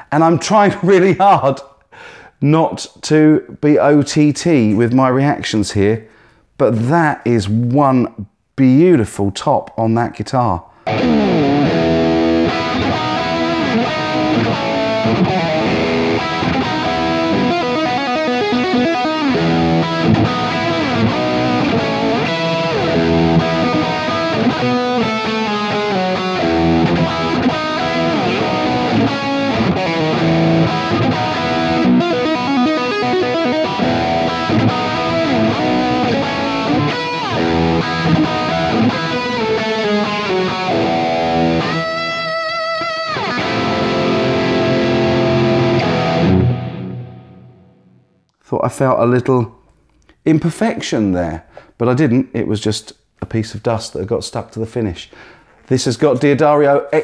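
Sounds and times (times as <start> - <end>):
electric guitar playing: 10.8 - 48.2.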